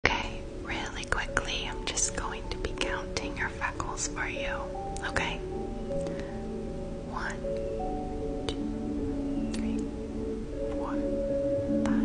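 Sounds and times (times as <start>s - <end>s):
woman whispering: 0.0s - 5.4s, 7.1s - 7.5s, 10.7s - 11.1s, 11.8s - 12.0s
faint steady tones: 0.0s - 12.0s.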